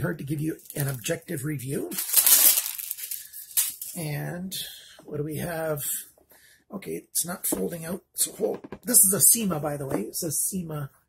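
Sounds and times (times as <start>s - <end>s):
packaging rustling: 0.6s - 1.2s, 1.9s - 4.0s.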